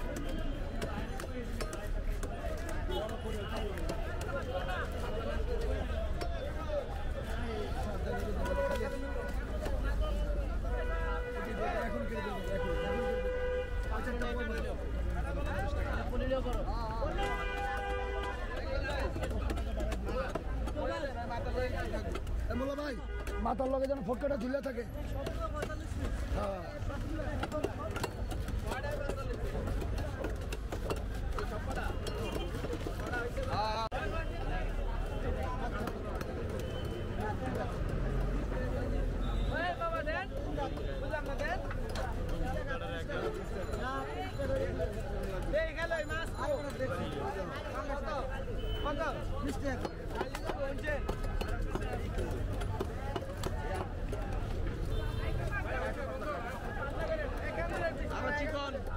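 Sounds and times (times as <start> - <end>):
men chattering: 0.0 - 58.9.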